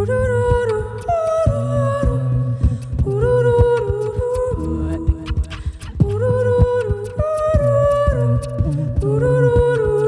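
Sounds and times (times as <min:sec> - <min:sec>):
woman singing layered harmony: 0:00.0 - 0:10.0
low bass line: 0:07.6 - 0:09.9.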